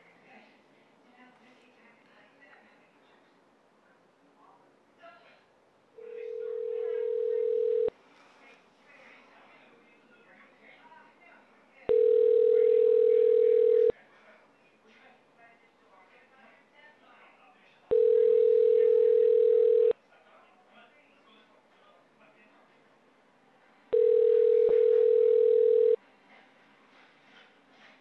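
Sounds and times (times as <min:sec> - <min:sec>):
telephone ringback tone: 0:06.0 - 0:07.9, 0:11.9 - 0:13.9, 0:17.9 - 0:19.9, 0:23.9 - 0:26.0
phone line click: 0:24.0 - 0:26.0.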